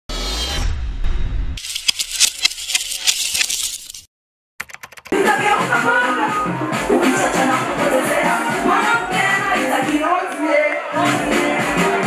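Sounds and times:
sharp clicks and rattles: 0:01.6 - 0:04.0.

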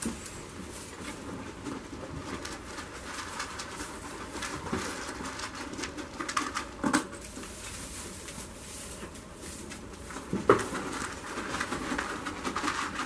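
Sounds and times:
goat hooves stepping in straw: 0:07.2 - 0:10.8.

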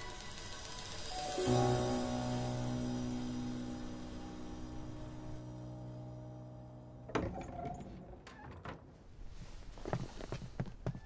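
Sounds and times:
background score low note: 0:00.1 - 0:07.2.

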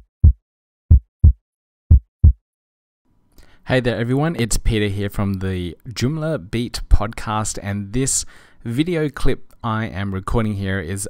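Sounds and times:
heartbeat thumps: 0:00.0 - 0:02.4.

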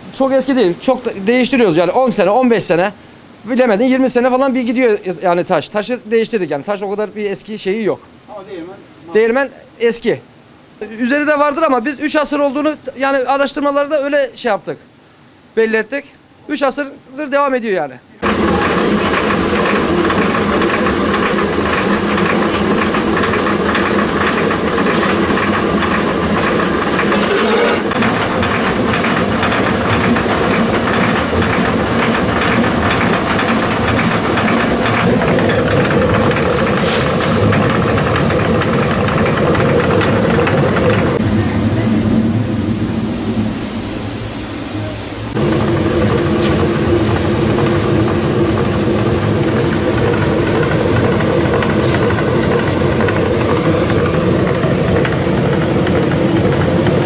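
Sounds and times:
millstone grinding grain: 0:18.2 - 0:41.2, 0:45.4 - 0:57.0.

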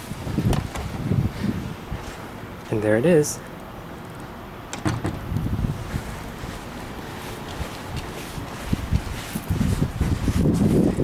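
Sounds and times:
wind buffeting microphone: 0:00.0 - 0:02.4, 0:04.7 - 0:11.0.

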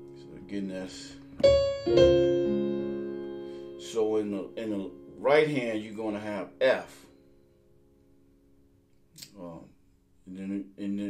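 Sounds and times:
piano chord ringing: 0:00.0 - 0:08.8.

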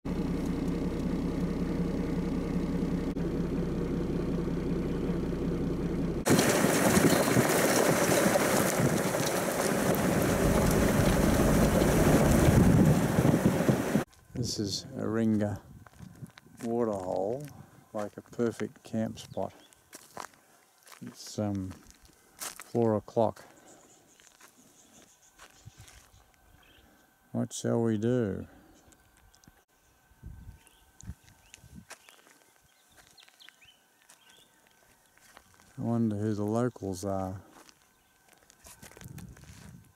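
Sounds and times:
engine drone: 0:00.1 - 0:15.6
tyres rumbling on gravel: 0:00.1 - 0:23.4, 0:31.2 - 0:39.9.

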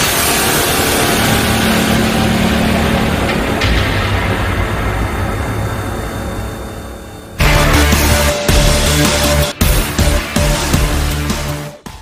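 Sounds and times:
low hum: 0:00.0 - 0:10.5
loud steady rushing noise: 0:00.0 - 0:11.7
intro music: 0:00.0 - 0:12.0.

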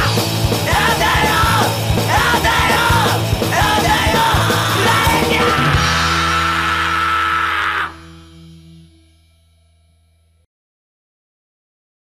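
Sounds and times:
guitar and bass notes ringing: 0:00.0 - 0:07.2, 0:07.9 - 0:10.4
punk band playing loudly: 0:00.0 - 0:08.6.

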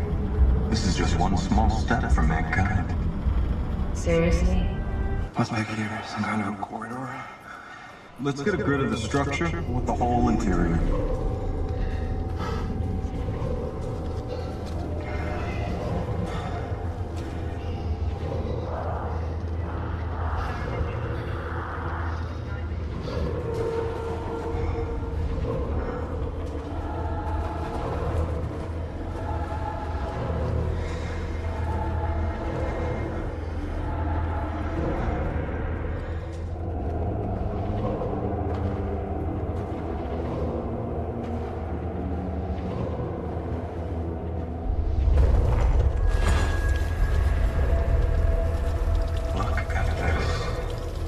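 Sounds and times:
low rumble: 0:00.0 - 0:06.6, 0:08.1 - 0:51.0
drone of layered tones: 0:00.0 - 0:51.0.

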